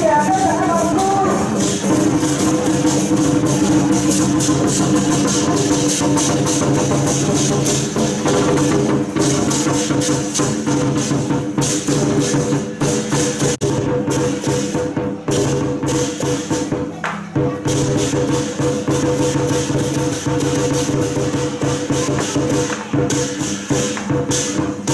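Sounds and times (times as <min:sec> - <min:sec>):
rapid cymbal clashing: 0:00.0 - 0:24.9.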